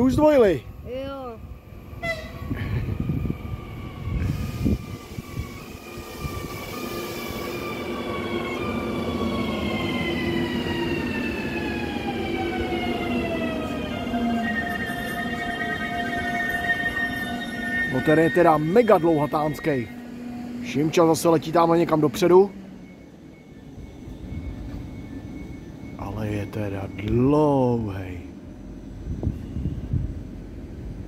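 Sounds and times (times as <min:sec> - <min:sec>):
electric train traction whine: 0:00.0 - 0:31.0
wheels rumbling on rails: 0:00.0 - 0:31.0.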